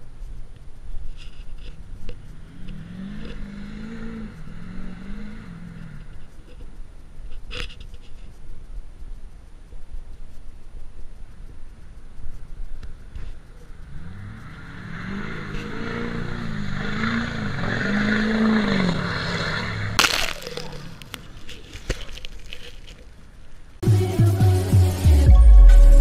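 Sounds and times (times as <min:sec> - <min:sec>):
truck engine revving: 0:02.2 - 0:06.2, 0:13.7 - 0:21.2
muddy water spraying: 0:15.7 - 0:23.1
loud crack: 0:20.0 - 0:22.3.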